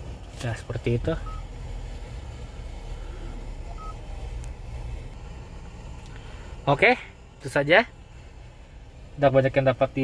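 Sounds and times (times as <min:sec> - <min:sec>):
steady low hum: 0:00.0 - 0:10.0
touchscreen beeps: 0:01.2 - 0:01.4, 0:03.8 - 0:04.0.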